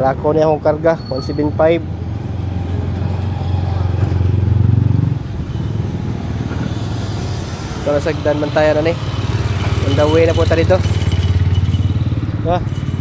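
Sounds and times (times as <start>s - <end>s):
motorcycle engine idling and revving: 0.0s - 13.0s.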